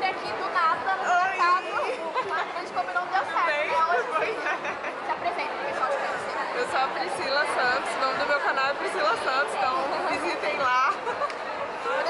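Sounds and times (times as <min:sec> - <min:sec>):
crowd chatter: 0:00.0 - 0:12.0
women talking over each other: 0:00.0 - 0:12.0.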